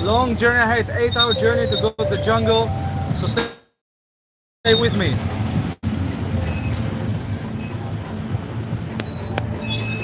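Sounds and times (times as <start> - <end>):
vehicle engine rumbling: 0.0 - 3.5, 4.7 - 10.0
street traffic: 0.0 - 3.7, 4.6 - 10.0.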